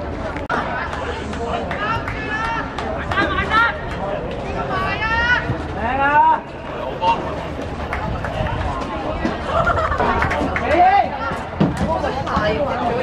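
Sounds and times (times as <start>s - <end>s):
people calling and chattering: 0.0s - 13.0s.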